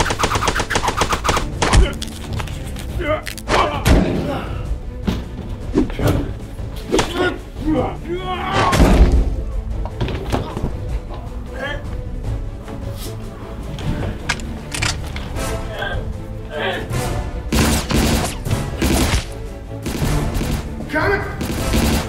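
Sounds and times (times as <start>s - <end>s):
action film music: 0.0s - 22.0s
shouts and grunts: 2.9s - 4.7s, 7.0s - 9.0s.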